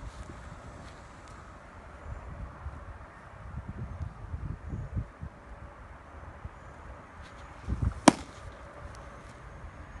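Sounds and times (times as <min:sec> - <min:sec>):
baseball smacking into mitt: 0:08.0 - 0:08.4.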